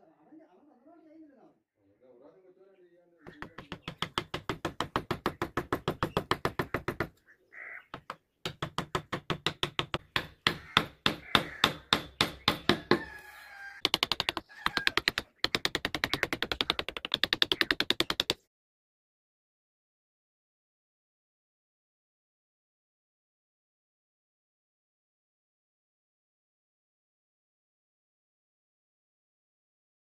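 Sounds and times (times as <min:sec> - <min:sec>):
chisel tapping into wood: 0:03.3 - 0:07.2, 0:07.9 - 0:13.2, 0:13.8 - 0:18.4.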